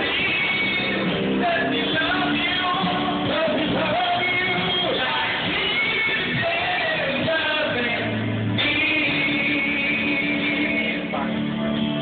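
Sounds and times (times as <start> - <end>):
karaoke music with guitar: 0.0 - 12.0.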